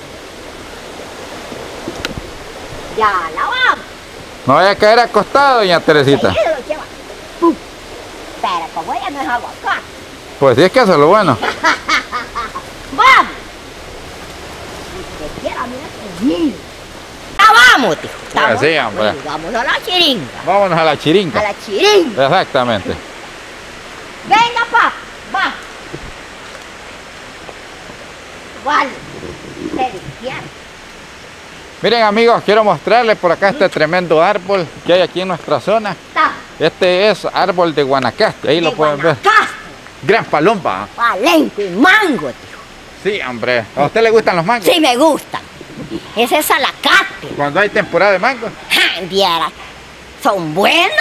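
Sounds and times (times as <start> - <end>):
river flowing: 0.0 - 51.0.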